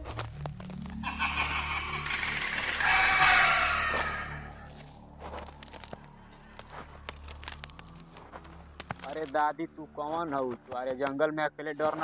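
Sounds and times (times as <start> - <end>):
dry grass rustling: 0.0 - 11.0
soft background music: 0.0 - 12.0.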